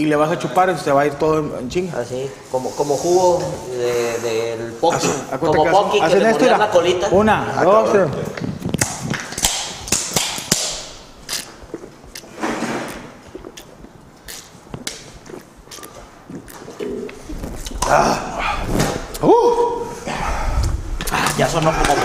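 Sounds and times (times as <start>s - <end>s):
people drinking: 3.4s - 22.0s.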